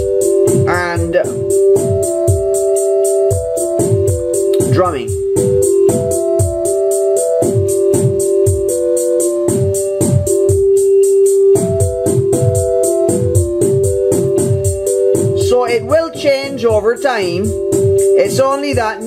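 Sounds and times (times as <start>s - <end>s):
kick and snare beat: 0.0s - 19.0s.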